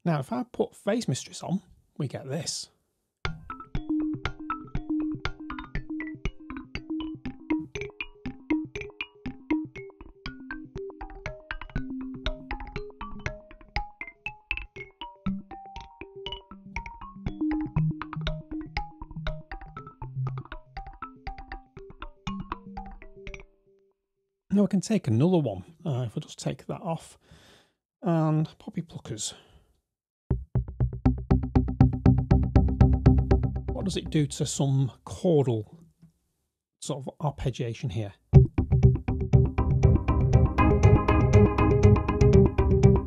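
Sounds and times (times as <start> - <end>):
bouncing synth mallet pattern: 3.3 - 23.6, 30.3 - 34.5, 38.4 - 43.0.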